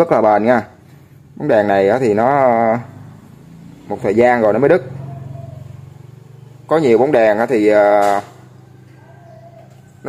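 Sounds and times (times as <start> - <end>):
man talking: 0.0 - 0.8, 1.4 - 3.0, 3.9 - 5.0, 6.7 - 8.3.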